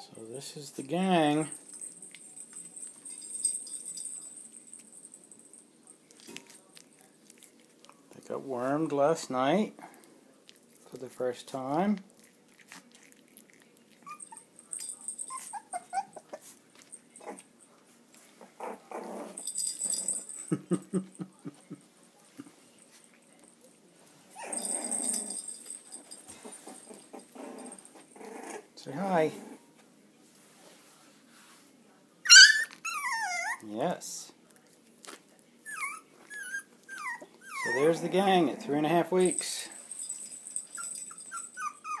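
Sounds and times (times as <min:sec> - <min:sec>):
puppies squeaking and whimpering: 0:14.0 - 0:14.5, 0:15.2 - 0:16.4, 0:32.3 - 0:33.6, 0:35.7 - 0:38.8, 0:40.7 - 0:42.0.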